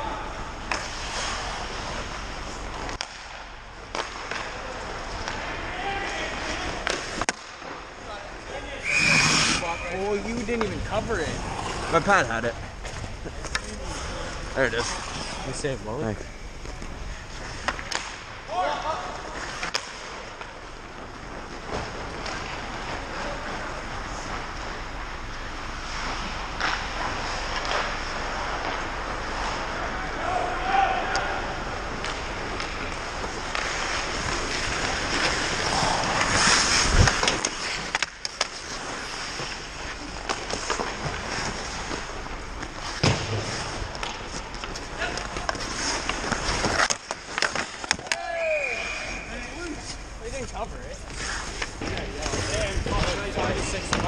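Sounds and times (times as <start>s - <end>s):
hockey stick and puck clacks: 0.6s - 5.5s, 6.1s - 7.9s, 16.7s - 18.4s, 19.2s - 23.6s, 25.8s - 29.7s, 31.1s - 48.4s, 51.1s - 54.0s
skate blades scraping ice: 0.6s - 15.6s, 17.3s - 54.0s.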